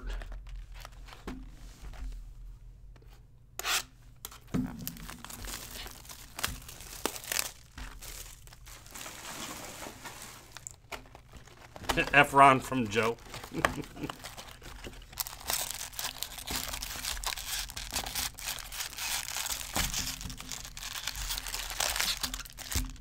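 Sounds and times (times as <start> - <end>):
wrappers torn and crinkled: 4.8 - 23.0.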